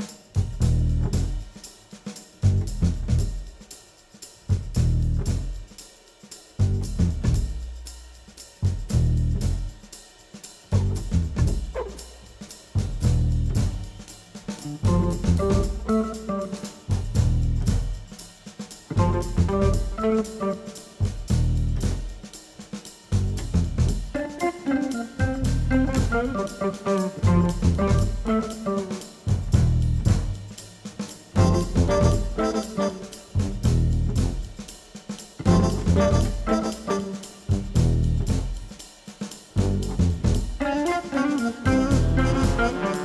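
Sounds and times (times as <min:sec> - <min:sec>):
drum kit: 0:00.0 - 0:43.0
heavy low bass notes: 0:00.4 - 0:01.4, 0:02.4 - 0:03.3, 0:04.5 - 0:05.6, 0:06.6 - 0:07.7, 0:08.7 - 0:09.8, 0:10.8 - 0:11.8, 0:12.8 - 0:14.0, 0:14.7 - 0:16.1, 0:16.9 - 0:18.0, 0:19.0 - 0:20.2, 0:21.0 - 0:22.1, 0:23.2 - 0:24.1, 0:25.2 - 0:26.5, 0:27.2 - 0:28.3, 0:29.3 - 0:30.5, 0:31.4 - 0:32.4, 0:33.4 - 0:34.5, 0:35.4 - 0:36.6, 0:37.5 - 0:38.6, 0:39.6 - 0:40.6, 0:41.7 - 0:42.8.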